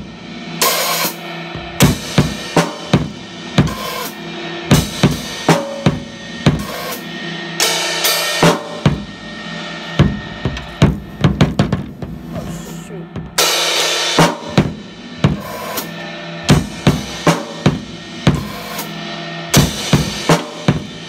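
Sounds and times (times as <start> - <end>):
bass drum: 9.9 - 13.6.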